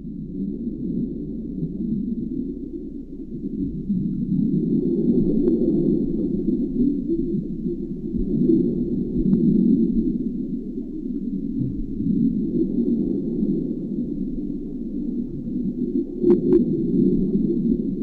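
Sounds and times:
faint high whine: 0.0 - 18.0
low churning underwater rumble: 0.0 - 18.0.

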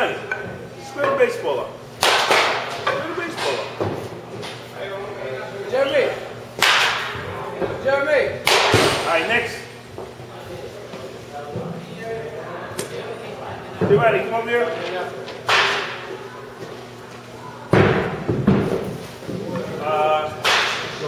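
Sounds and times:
bat hitting ball: 2.0 - 2.8, 6.6 - 7.2, 8.4 - 9.1, 20.4 - 21.0.

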